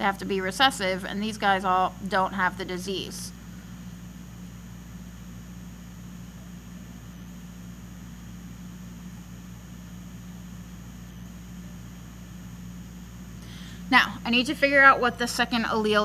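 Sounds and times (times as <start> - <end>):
low hum with faint hiss: 0.0 - 16.0.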